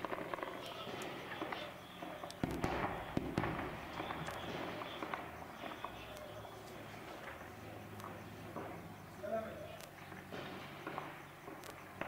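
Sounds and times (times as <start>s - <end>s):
gunshots: 0.0s - 12.0s.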